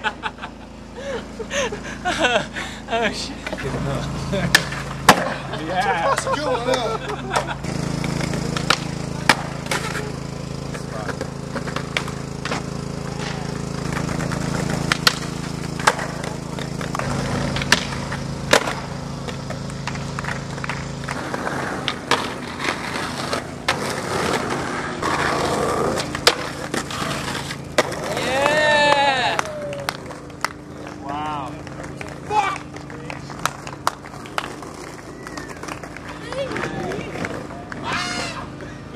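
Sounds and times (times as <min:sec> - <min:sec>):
steady low hum: 0:00.0 - 0:38.9
skateboard rolling on concrete: 0:03.0 - 0:38.8
skateboard clacking on ground: 0:04.5 - 0:05.4, 0:06.7 - 0:38.4
people shouting: 0:28.1 - 0:30.0, 0:37.8 - 0:38.6.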